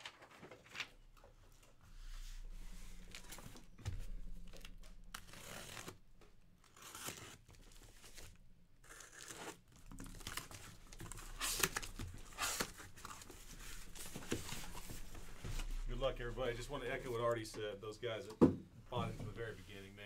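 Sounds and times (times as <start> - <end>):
cardboard scraping and rustling: 2.0 - 6.0, 6.7 - 17.4
packing tape tearing: 4.5 - 6.0, 6.6 - 15.3.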